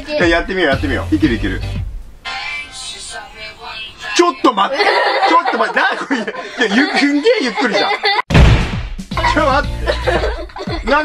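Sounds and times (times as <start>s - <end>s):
girl and young man talking: 0.0s - 1.1s, 2.6s - 5.0s
chuckling laughter: 4.7s - 8.3s, 9.2s - 11.0s.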